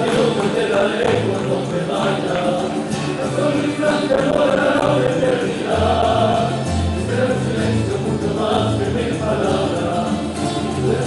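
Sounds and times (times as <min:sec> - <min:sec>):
men singing in chorus: 0:00.0 - 0:11.0
strummed guitars: 0:00.0 - 0:11.0.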